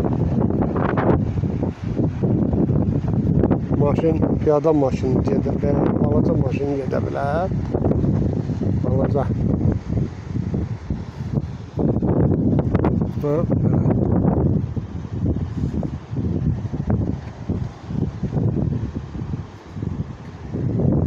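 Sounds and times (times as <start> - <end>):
wind buffeting microphone: 0.0 - 21.0
person speaking: 3.8 - 7.6, 8.7 - 9.5, 13.0 - 14.0.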